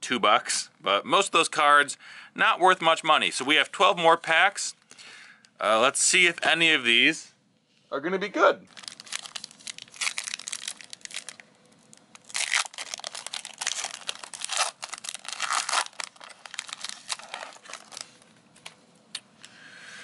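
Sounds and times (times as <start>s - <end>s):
foil wrapper tearing and crinkling: 8.7s - 18.2s.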